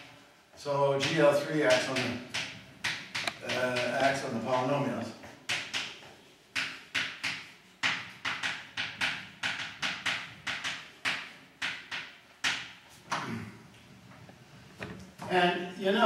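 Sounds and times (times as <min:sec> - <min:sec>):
chalk tapping and scratching: 0:01.0 - 0:13.2.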